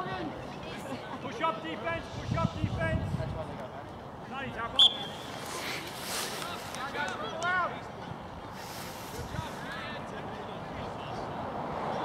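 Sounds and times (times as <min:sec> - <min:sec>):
wind on microphone: 0:02.2 - 0:03.5.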